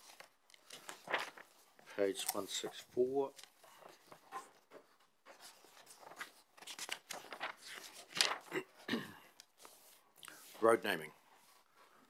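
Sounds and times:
faint rustling and handling: 0:00.0 - 0:12.0.

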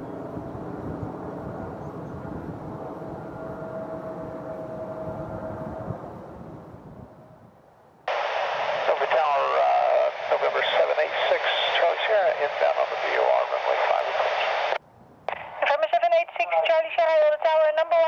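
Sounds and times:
distant jet engine rumble: 0:00.0 - 0:15.8
radio transmission with voice: 0:08.1 - 0:18.0.

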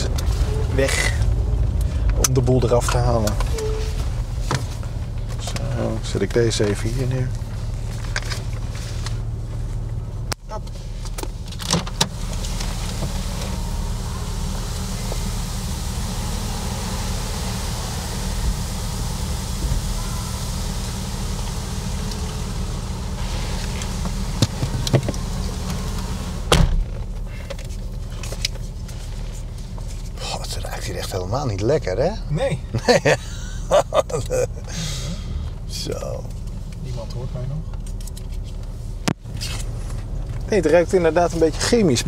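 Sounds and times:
steady low hum: 0:00.0 - 0:42.0
car door opening: 0:11.1 - 0:14.1, 0:22.0 - 0:27.2
car door shutting: 0:11.1 - 0:15.6, 0:16.2 - 0:27.6
broad hiss: 0:12.1 - 0:26.6.

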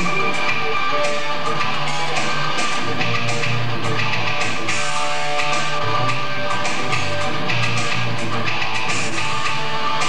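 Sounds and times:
electric guitar lead notes: 0:00.0 - 0:10.0.

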